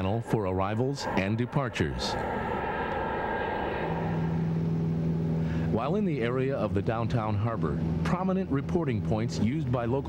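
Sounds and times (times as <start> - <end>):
jet airliner flying past: 0.0 - 7.2
low engine drone: 0.0 - 10.0.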